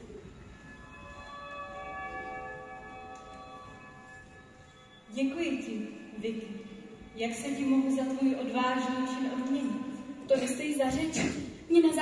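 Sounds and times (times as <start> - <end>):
sustained bell-like chord: 0.0 - 10.6.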